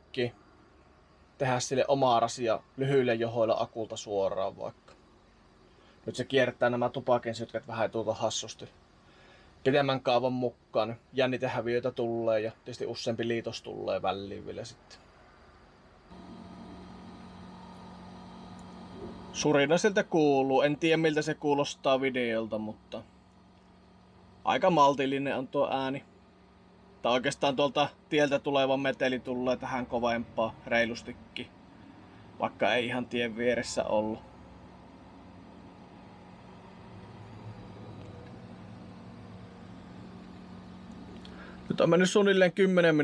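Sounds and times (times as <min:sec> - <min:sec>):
cool box compressor humming: 0:15.6 - 0:42.2.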